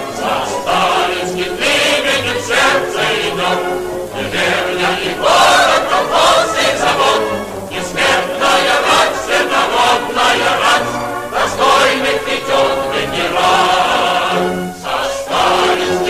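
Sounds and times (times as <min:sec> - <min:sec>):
choir singing with music: 0:00.0 - 0:16.0.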